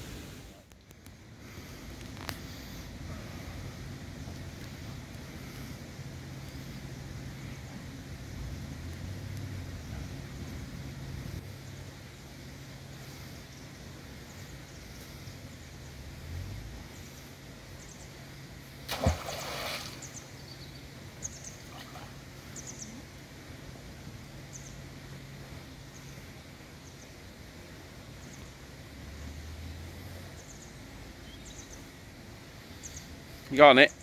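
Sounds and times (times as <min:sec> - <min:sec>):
steady low hum: 0:00.0 - 0:34.0
faint bird chirps: 0:19.8 - 0:23.2.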